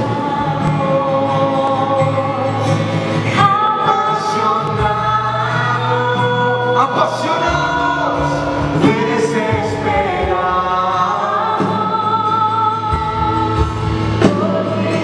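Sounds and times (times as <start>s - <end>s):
band accompaniment: 0.0s - 15.0s.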